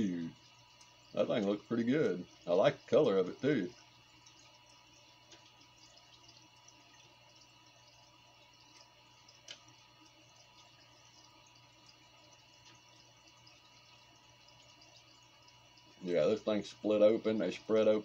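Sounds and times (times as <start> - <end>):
fish tank water hum: 0.0 - 18.0
light drips and ticks: 0.0 - 18.0.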